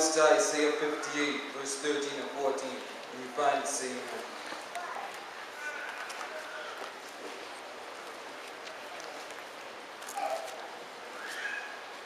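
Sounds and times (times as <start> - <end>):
faint voices: 0.0 - 12.0
room noise: 0.0 - 12.0.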